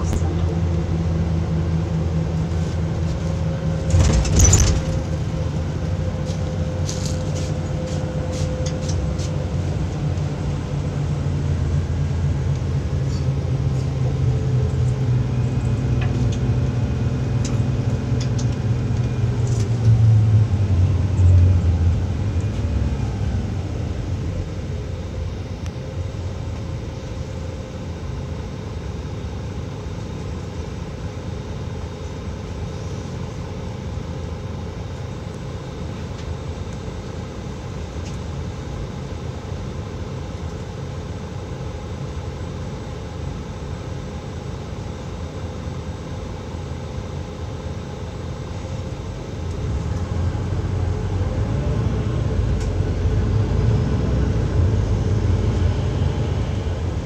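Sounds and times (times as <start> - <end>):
road traffic engine rumble: 0.0 - 57.0.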